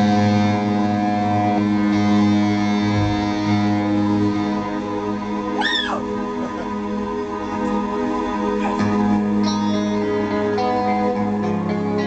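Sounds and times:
bass guitar: 0:00.0 - 0:12.0
electric guitar: 0:00.0 - 0:12.0.

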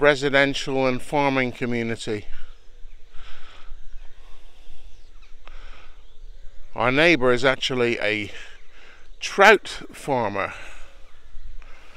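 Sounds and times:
wind buffeting microphone: 0:00.0 - 0:11.9
faint bird chirps: 0:00.3 - 0:11.9.

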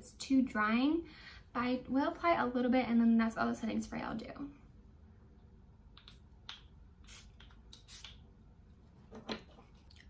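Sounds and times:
faint spray bottle spritzes: 0:07.0 - 0:08.2.

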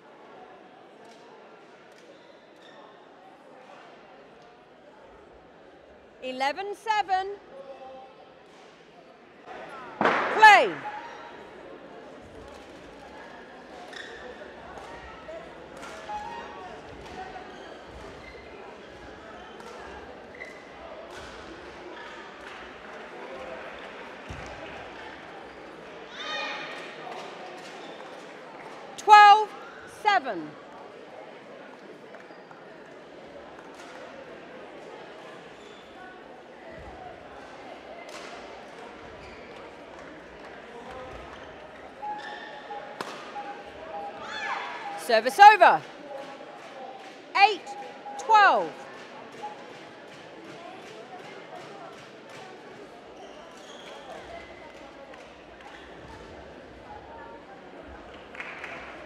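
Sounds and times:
shoe squeaks: 0:13.8 - 0:14.4, 0:41.5 - 0:42.7, 0:53.2 - 0:54.1.

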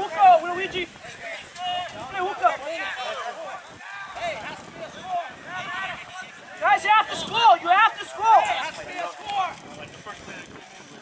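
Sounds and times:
people shouting: 0:00.0 - 0:09.6
faint voices: 0:00.0 - 0:11.0
low outdoor murmur: 0:00.0 - 0:11.0.

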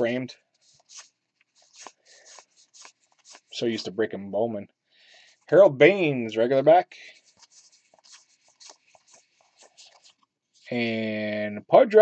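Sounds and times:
trading cards scraping together: 0:00.6 - 0:03.8, 0:07.0 - 0:11.0.

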